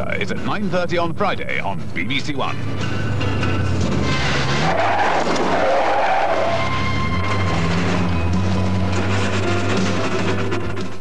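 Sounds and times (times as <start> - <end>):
music: 0.0 - 4.7, 6.2 - 11.0
car tyres skidding: 2.6 - 11.0.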